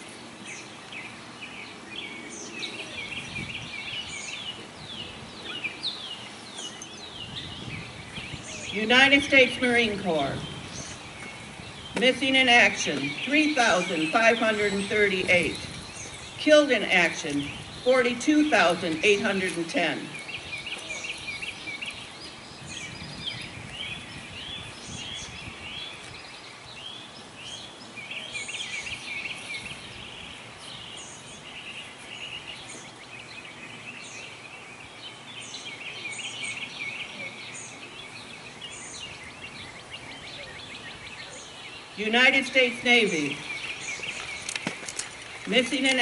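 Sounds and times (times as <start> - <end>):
bird chirping: 0.0 - 46.0
outdoor background noise: 0.0 - 46.0.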